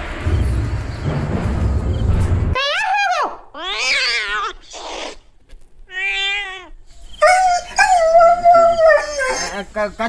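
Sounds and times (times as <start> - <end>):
cat meowing: 5.9 - 6.8.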